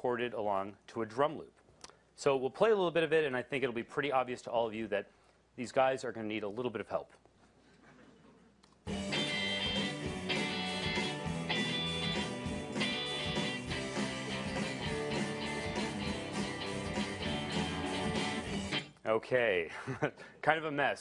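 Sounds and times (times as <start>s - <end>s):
drum loop: 8.9s - 18.9s
electric and acoustic guitars: 8.9s - 18.9s
bass guitar: 8.9s - 19.0s.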